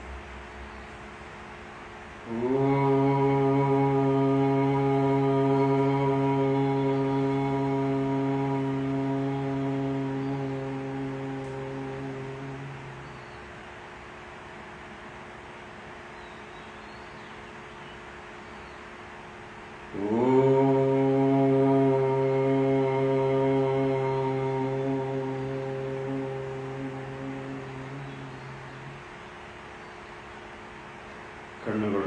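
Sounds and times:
man chanting om: 2.2s - 13.6s, 19.8s - 30.1s, 31.5s - 32.0s.

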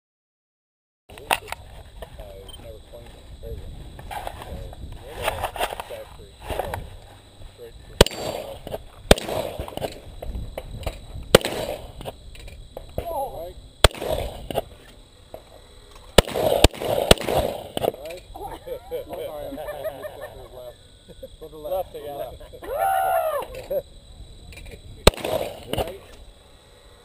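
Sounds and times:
gunshots: 8.0s - 10.1s, 10.8s - 12.2s, 13.8s - 14.8s, 16.1s - 18.2s, 25.0s - 26.1s.

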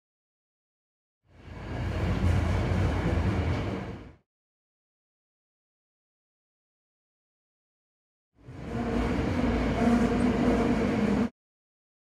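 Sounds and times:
subway car rumbling: 1.2s - 4.2s, 8.4s - 11.3s.

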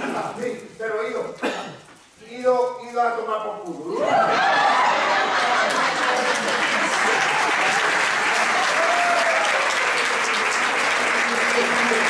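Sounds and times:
audience applause: 4.1s - 12.0s.

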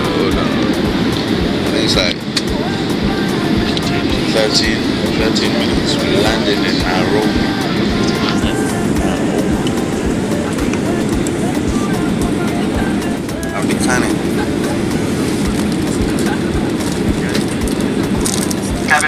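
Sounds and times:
airliner cabin roar: 0.0s - 19.0s.

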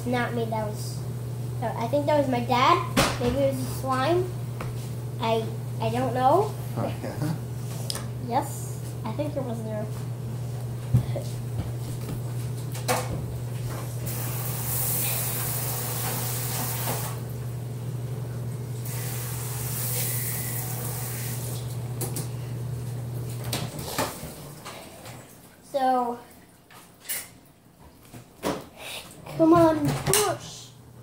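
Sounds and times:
steady low hum: 0.0s - 26.5s.

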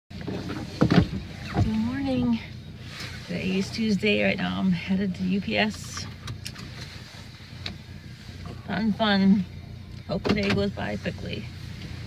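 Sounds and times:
knocks and rustles in car: 0.1s - 2.2s, 10.0s - 11.0s
low rumble: 0.2s - 12.0s
woman's voice: 1.6s - 2.6s, 3.2s - 6.1s, 8.6s - 9.5s, 10.1s - 11.5s.

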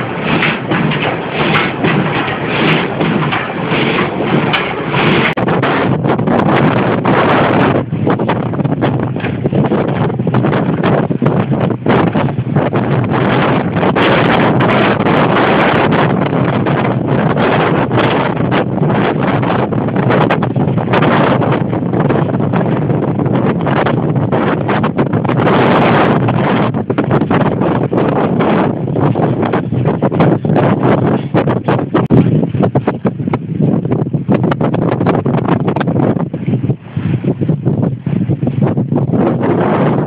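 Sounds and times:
frame saw cutting log: 0.0s - 5.4s
mill machinery running: 0.0s - 36.6s
wind buffeting microphone: 0.0s - 40.0s.

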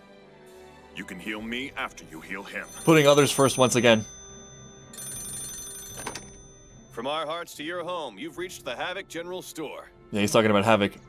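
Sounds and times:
soft background music: 0.0s - 11.0s
telephone bell ringing: 2.2s - 7.3s.

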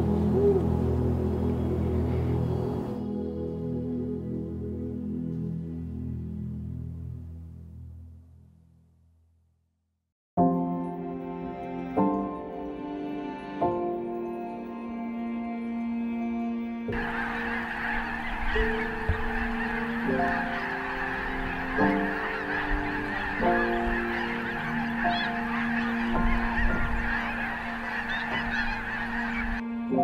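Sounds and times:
flock of geese honking: 0.0s - 3.1s, 16.9s - 30.0s
slow background music: 0.0s - 8.6s, 10.4s - 30.0s.

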